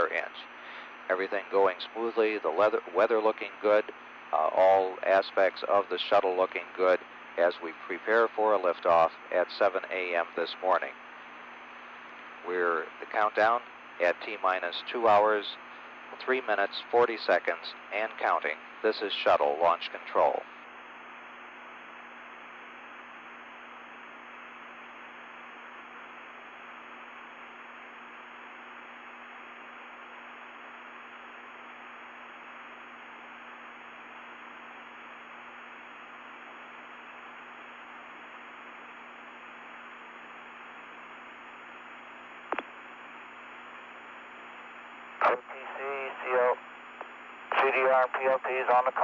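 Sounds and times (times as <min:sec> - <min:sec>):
radio channel hiss: 0:00.0 - 0:49.0
radio click: 0:42.4 - 0:42.8, 0:47.0 - 0:47.7
garbled radio voice: 0:45.2 - 0:46.6, 0:47.5 - 0:49.0.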